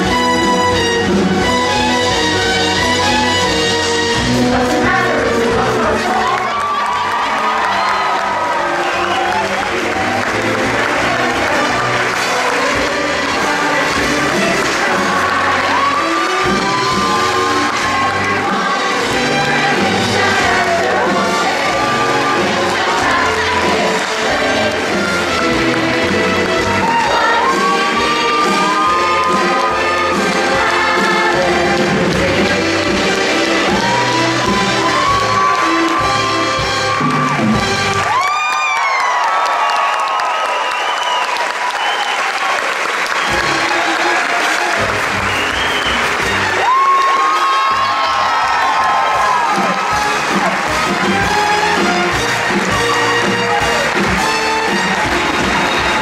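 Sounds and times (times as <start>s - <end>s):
live band playing brassy music: 0.0s - 38.2s, 43.0s - 56.0s
audience applauding: 4.8s - 56.0s.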